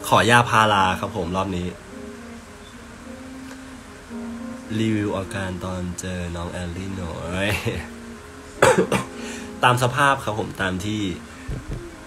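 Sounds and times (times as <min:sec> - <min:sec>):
man coughing: 0:08.6 - 0:09.2.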